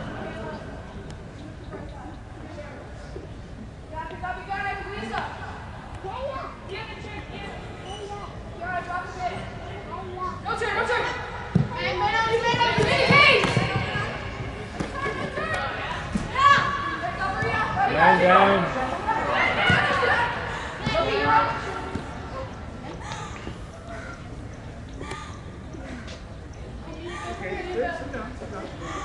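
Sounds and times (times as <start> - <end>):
voices shouting in echoing hall: 4.4 - 26.1
soccer ball kicked thuds: 11.5 - 11.8.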